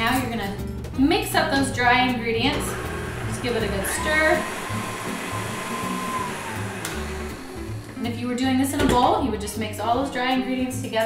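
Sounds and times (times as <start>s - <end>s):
background music: 0.0s - 11.0s
stand mixer motor whirring: 2.5s - 8.3s.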